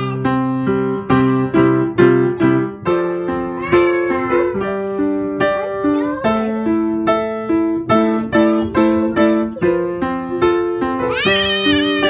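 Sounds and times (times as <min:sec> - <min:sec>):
piano music: 0:00.0 - 0:12.0
child squealing: 0:03.6 - 0:04.5, 0:11.1 - 0:12.0.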